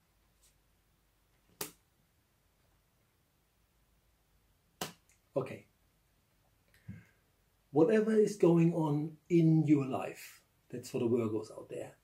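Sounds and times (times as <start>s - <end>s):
cards click: 1.5s - 1.8s.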